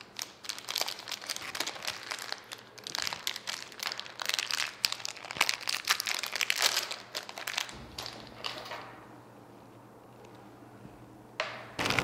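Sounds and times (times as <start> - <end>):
plastic bag crinkling: 0.0 - 8.6, 11.8 - 12.0.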